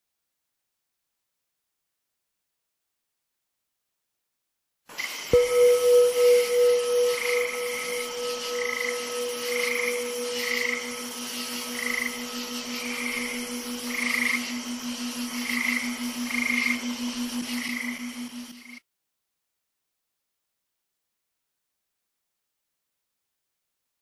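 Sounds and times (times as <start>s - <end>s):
frogs calling: 5.0s - 18.8s
ringing bell-like tone: 5.3s - 18.8s.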